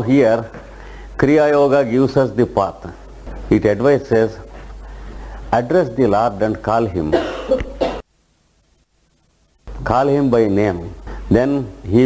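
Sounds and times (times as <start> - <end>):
man coughing and clearing throat: 7.1 - 8.0.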